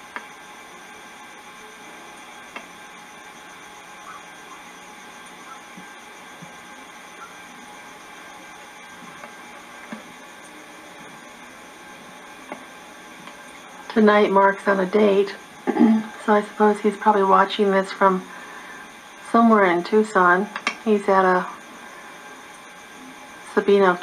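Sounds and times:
faint high steady tones: 0:00.0 - 0:24.0.

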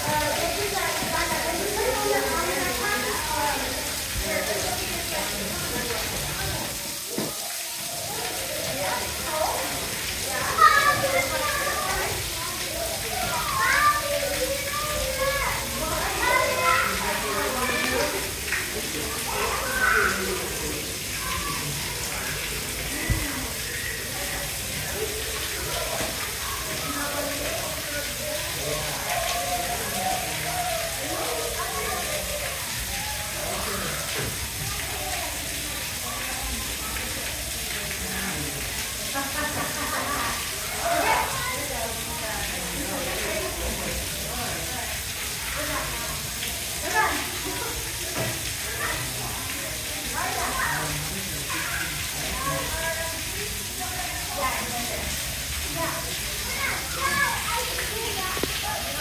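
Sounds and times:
indistinct chatter of voices: 0:00.0 - 0:59.0.

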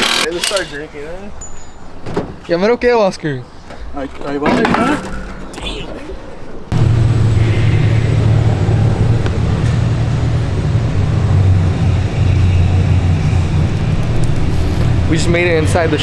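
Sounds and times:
vehicle engine rumbling: 0:03.4 - 0:16.0.

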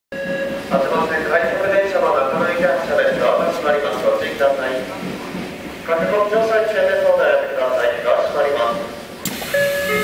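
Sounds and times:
electric train hum: 0:00.2 - 0:10.0.

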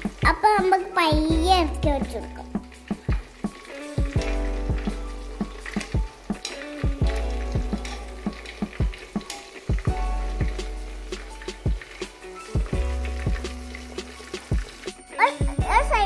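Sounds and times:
chicken sizzling in hot oil: 0:00.0 - 0:16.0
music with beat and deep bass: 0:00.0 - 0:16.0.

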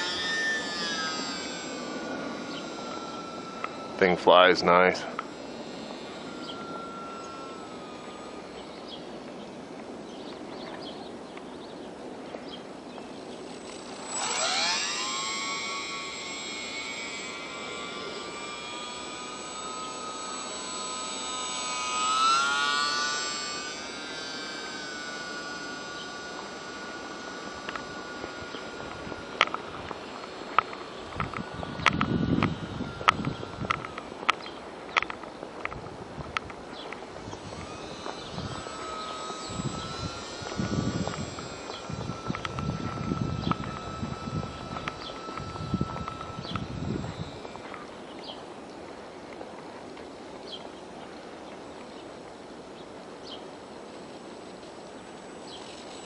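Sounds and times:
model plane motor whining: 0:00.0 - 0:56.0.

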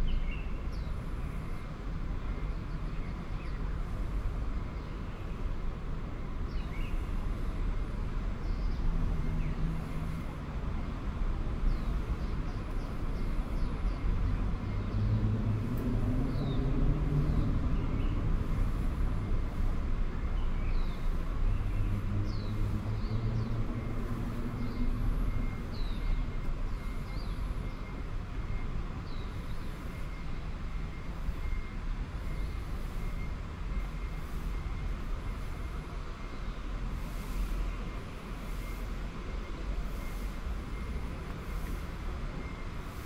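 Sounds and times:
low traffic rumble: 0:00.0 - 0:43.0
faint high-pitched beep: 0:25.1 - 0:36.4, 0:38.4 - 0:43.0.

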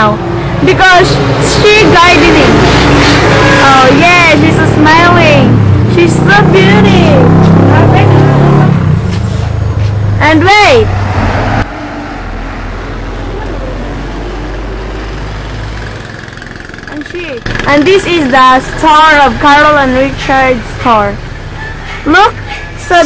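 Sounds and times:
voices talking: 0:00.0 - 0:08.9, 0:13.0 - 0:15.5, 0:16.8 - 0:23.0.

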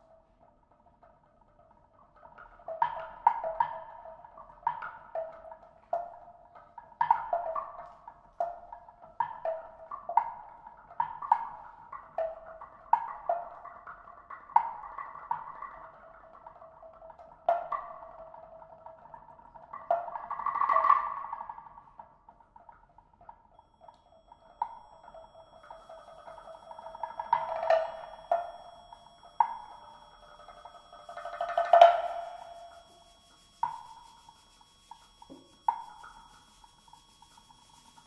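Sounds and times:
tuned mallet percussion notes: 0:23.6 - 0:38.0
mallet percussion roll: 0:25.0 - 0:38.0.

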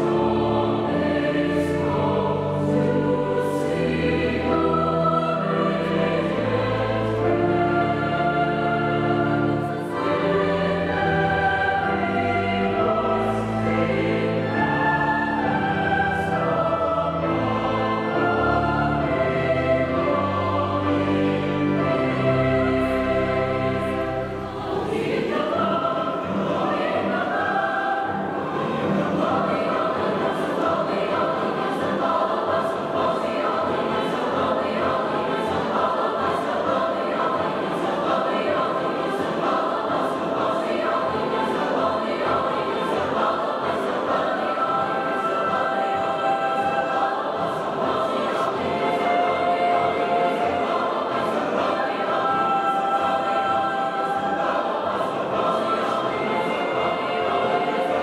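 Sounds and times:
choir singing held chords: 0:00.0 - 0:58.0.

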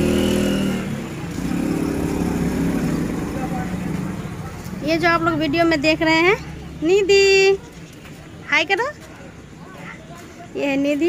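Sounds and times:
vehicle engine running: 0:00.0 - 0:07.6.

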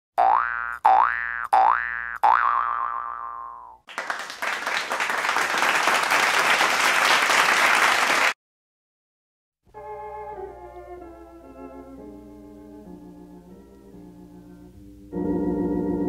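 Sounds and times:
cartoon boing sound effects: 0:00.2 - 0:03.8.

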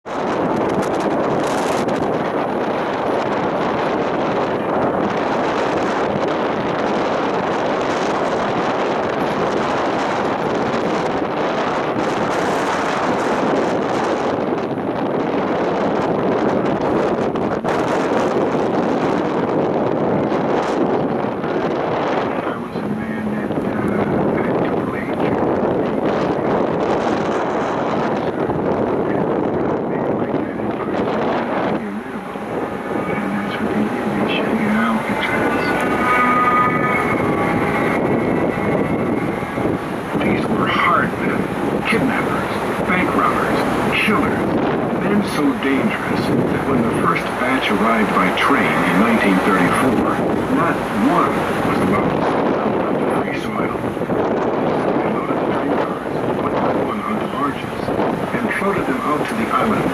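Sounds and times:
boat engine rushing: 0:00.0 - 0:59.9
water rushing: 0:00.0 - 0:59.9
wind buffeting microphone: 0:00.0 - 0:59.9.

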